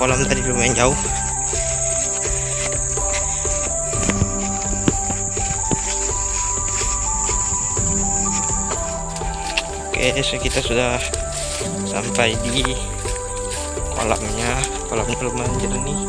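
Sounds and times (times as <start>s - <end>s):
background music of held notes: 0.0s - 16.0s
insects droning in grass: 0.0s - 16.0s.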